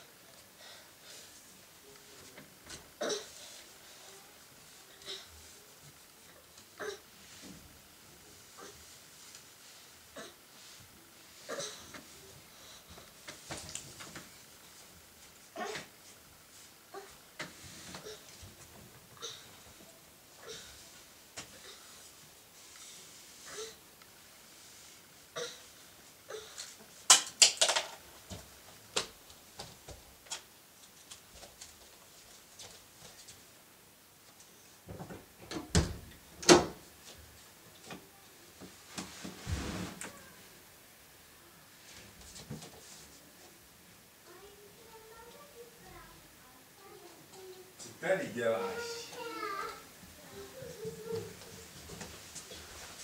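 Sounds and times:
soft rustles: 0:00.2 - 0:27.1, 0:28.0 - 0:34.8, 0:36.9 - 0:40.5, 0:41.7 - 0:43.7, 0:44.3 - 0:53.0
small child's vocal sound: 0:15.6 - 0:15.9, 0:16.9 - 0:17.2, 0:40.0 - 0:40.6, 0:44.2 - 0:47.8, 0:48.5 - 0:51.8.

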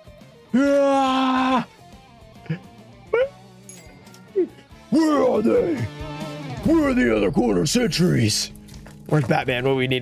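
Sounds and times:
man yelping: 0:00.5 - 0:01.7
quiet background music: 0:00.5 - 0:10.0.

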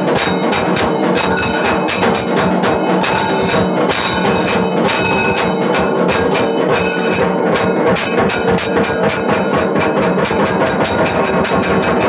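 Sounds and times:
metal bells rung rapidly: 0:00.0 - 0:12.0.

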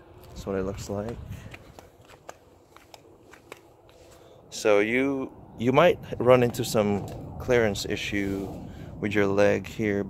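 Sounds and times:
faint footsteps on concrete: 0:00.2 - 0:04.3.

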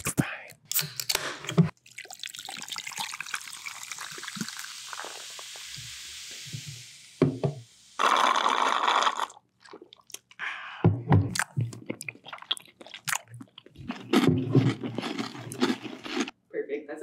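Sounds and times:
drink pouring into glass: 0:01.8 - 0:05.8.

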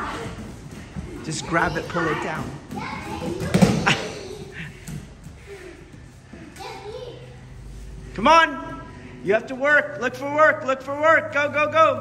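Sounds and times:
children's voices: 0:00.0 - 0:04.8, 0:05.4 - 0:07.9.

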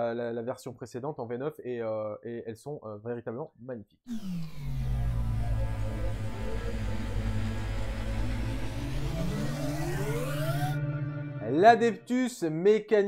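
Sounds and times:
low synthesized drone: 0:04.1 - 0:12.0
tone rising in pitch: 0:04.1 - 0:12.1.

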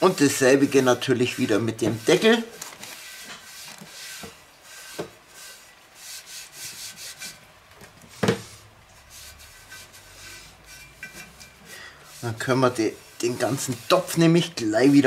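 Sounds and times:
cloth scrubbing a metal lid: 0:00.0 - 0:07.4, 0:08.4 - 0:15.0.

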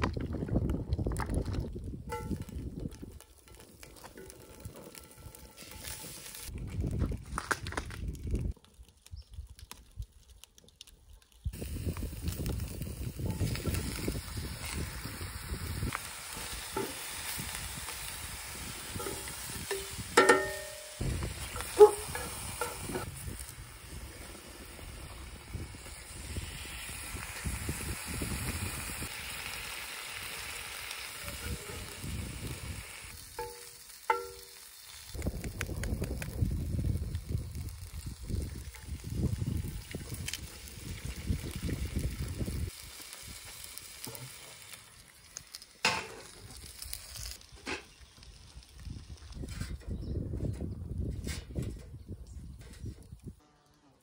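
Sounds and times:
food sizzling in a skillet: 0:04.0 - 0:06.5, 0:11.6 - 0:35.2, 0:36.6 - 0:47.4.

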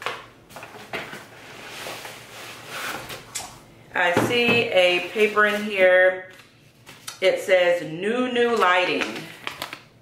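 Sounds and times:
cardboard rustling and scraping: 0:00.5 - 0:03.3, 0:04.8 - 0:05.9.

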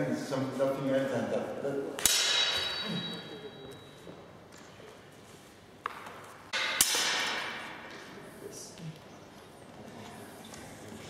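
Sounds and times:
swords clashing: 0:02.0 - 0:03.9, 0:06.5 - 0:07.9.

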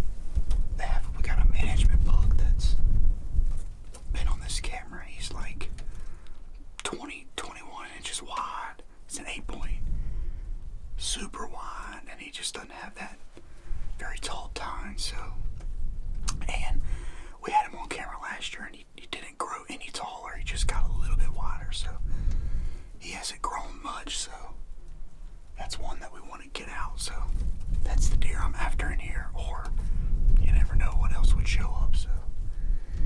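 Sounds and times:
low rumble: 0:00.0 - 0:06.6, 0:13.6 - 0:18.3, 0:20.3 - 0:33.0
man whispering: 0:00.8 - 0:02.8, 0:04.1 - 0:05.8, 0:06.7 - 0:09.9, 0:11.0 - 0:15.5, 0:16.3 - 0:22.1, 0:23.0 - 0:24.7, 0:25.6 - 0:32.4.

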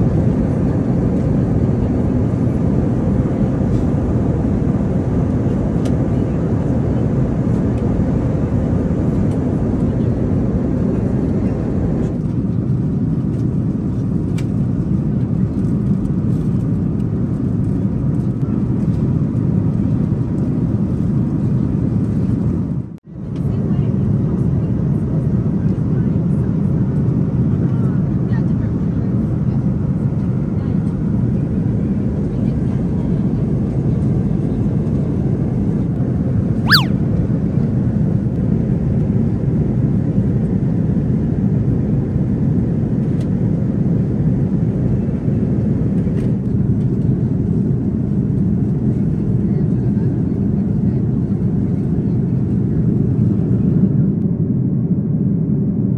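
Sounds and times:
airliner cabin engine and airflow: 0:00.0 - 0:55.9.

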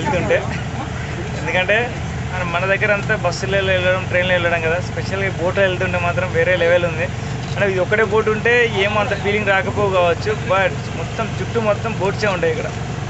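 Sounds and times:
man talking: 0:00.0 - 0:12.8
motorboat engine droning: 0:00.0 - 0:13.0.

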